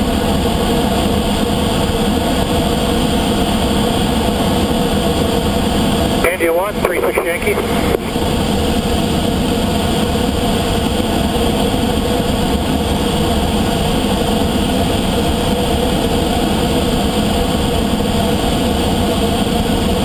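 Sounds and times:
airflow rushing over cockpit: 6.2 - 8.6.

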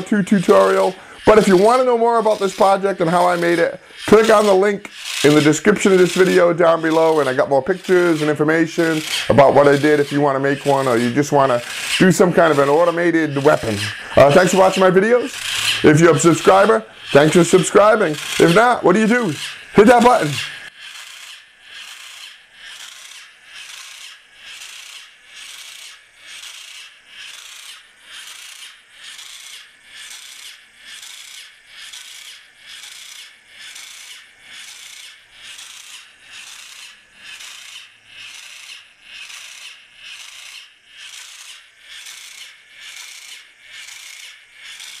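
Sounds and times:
spiked ball scraping on wood: 0.0 - 45.0.

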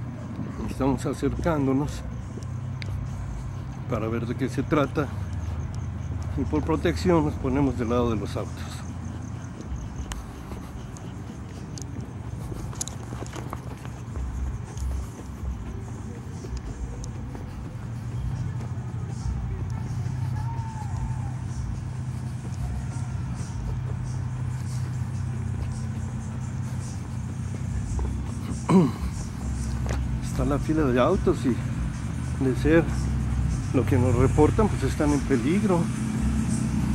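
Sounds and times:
car engines humming: 0.0 - 36.9.

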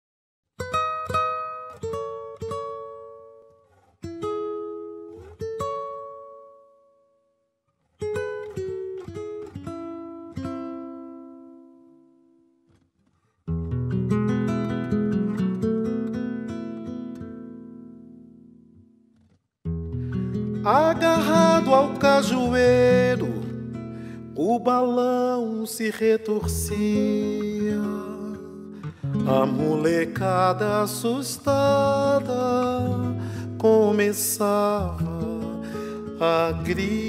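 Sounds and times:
solo acoustic guitar: 0.5 - 37.0.

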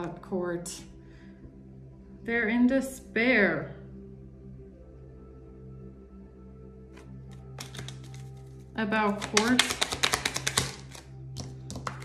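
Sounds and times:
soft background music: 0.0 - 12.0
cards being shuffled: 6.9 - 12.0
card taps: 7.0 - 8.3, 9.2 - 12.0.

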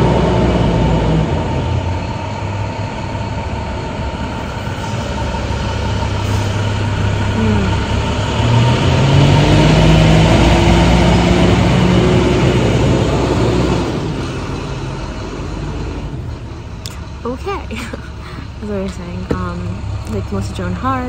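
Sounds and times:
heavy truck engine running: 0.0 - 21.0.

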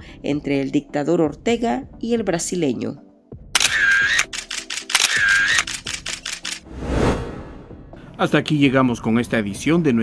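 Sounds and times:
fast run of sharp clicks: 3.6 - 6.6.

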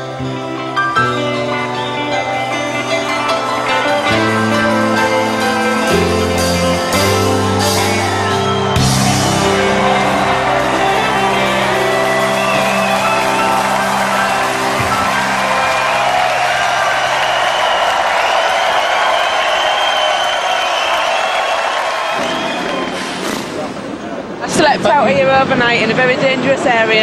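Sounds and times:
rock band held chord: 0.0 - 24.4
audience cheering and whooping: 2.0 - 23.6.

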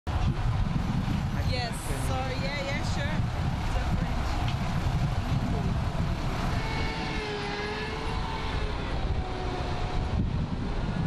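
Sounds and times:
street traffic rumbling: 0.1 - 11.0.

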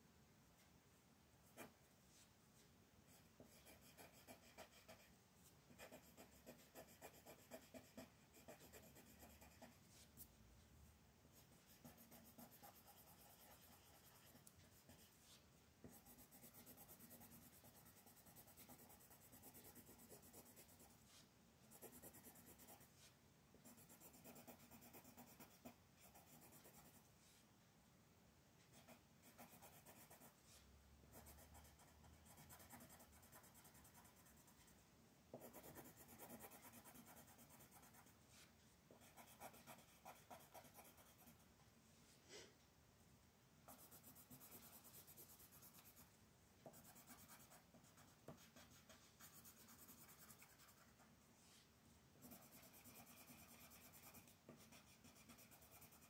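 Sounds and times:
colored pencil scratching on paper: 1.5 - 2.2, 3.1 - 10.3, 11.4 - 27.4, 28.6 - 41.4, 43.6 - 51.6, 52.2 - 56.0.

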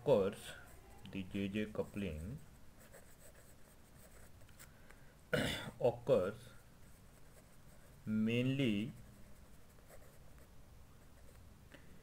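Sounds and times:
pen scratching on paper: 1.8 - 4.4, 6.9 - 8.1, 8.8 - 11.4.

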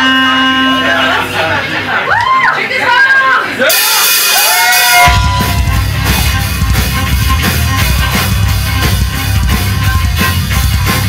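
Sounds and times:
whooping yells: 2.0 - 3.4, 4.3 - 5.6
metal band playing: 3.6 - 11.0
cymbals: 3.7 - 11.0.

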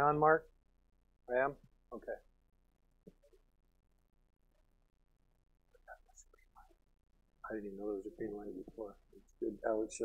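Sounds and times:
faint whispered words: 5.8 - 6.8, 7.4 - 10.0.

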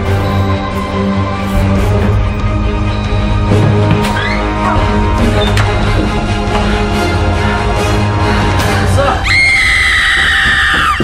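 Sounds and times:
woman screaming: 9.2 - 11.0.

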